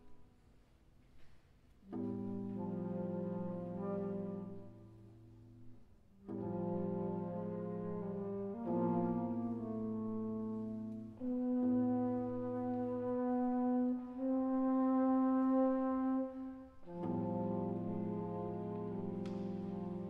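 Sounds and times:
chamber music with held notes: 0.0s - 20.0s.

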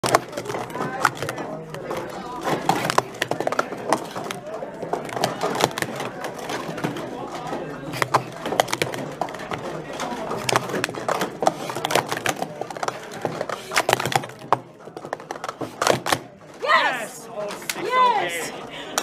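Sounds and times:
plastic cups clacking: 0.0s - 16.7s.

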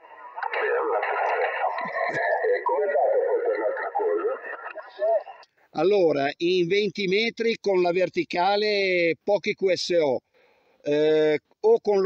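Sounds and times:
man's voice over radio speaker: 0.0s - 10.3s, 10.9s - 12.0s.

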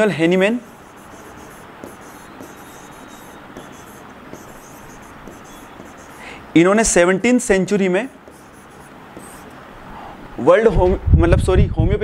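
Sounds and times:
stylus scratching on a board: 0.0s - 6.3s, 8.0s - 9.5s.

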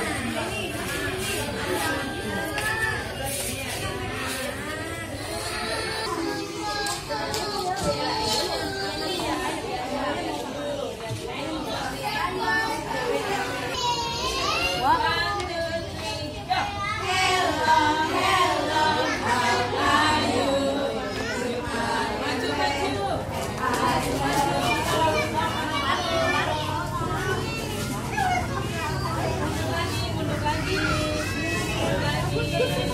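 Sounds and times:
children and adults talking: 0.0s - 32.9s.

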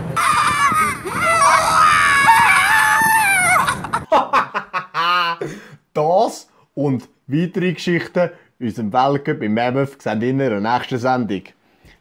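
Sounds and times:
men screaming in excitement: 0.0s - 5.4s.

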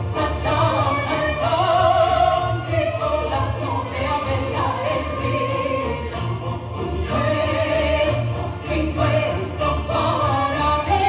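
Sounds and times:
choir holding long notes: 0.0s - 11.0s.

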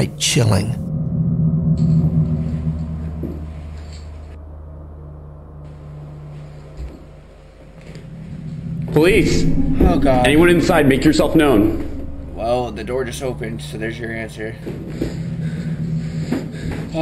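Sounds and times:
low droning background music: 0.0s - 17.0s.

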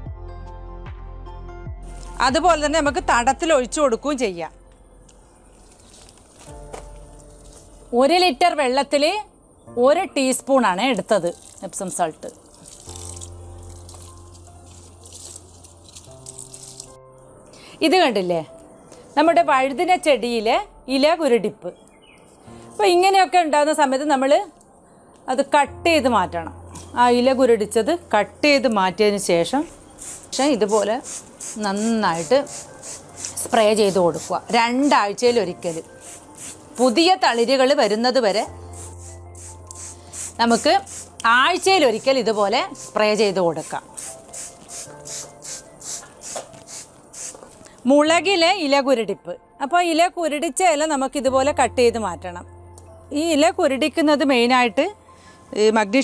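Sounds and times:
woman talking: 2.2s - 4.6s, 22.8s - 24.5s, 40.4s - 43.8s
woman's voice: 2.2s - 4.6s, 22.8s - 24.5s, 25.3s - 29.7s, 33.5s - 35.9s, 40.4s - 43.9s, 47.9s - 52.5s, 53.1s - 56.0s
spray bottle squirting: 11.3s - 17.0s, 30.0s - 37.6s, 38.7s - 47.5s.

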